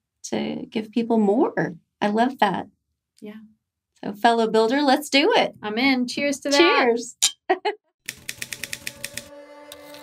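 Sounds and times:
soft held music chord: 9.3 - 10.0.

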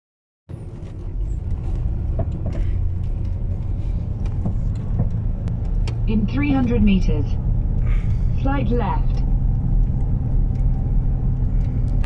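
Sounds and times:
car engine and road rumble: 0.5 - 12.0.

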